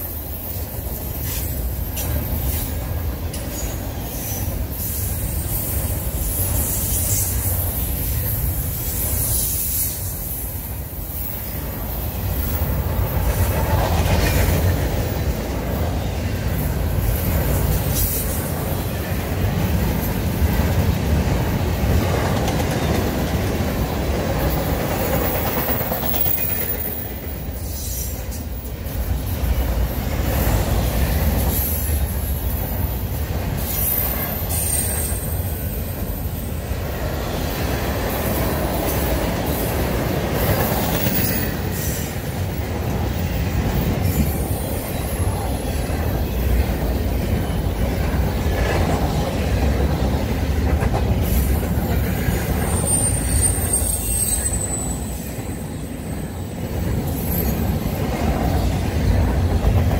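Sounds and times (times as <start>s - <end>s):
train wheels rumbling on rail: 0.0s - 59.9s
high-pitched wheel squeals: 52.6s - 56.0s.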